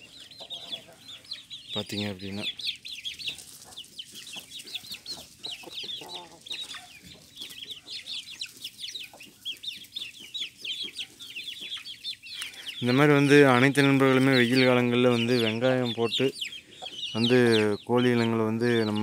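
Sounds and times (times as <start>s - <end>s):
chicks peeping: 0.0s - 19.0s.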